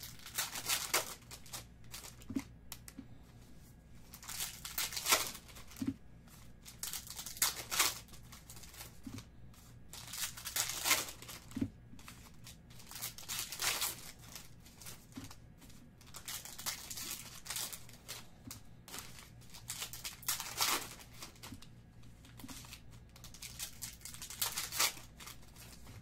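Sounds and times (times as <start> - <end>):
foil wrappers crinkling and tearing: 0.0 - 2.8, 4.0 - 5.8, 6.5 - 9.3, 9.9 - 26.0
faint low hum: 0.0 - 26.0.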